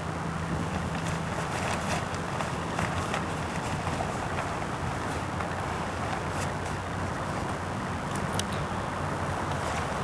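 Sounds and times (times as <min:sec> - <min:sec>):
wind noise on microphone: 0:00.0 - 0:10.0
fabric crinkling: 0:00.6 - 0:07.6.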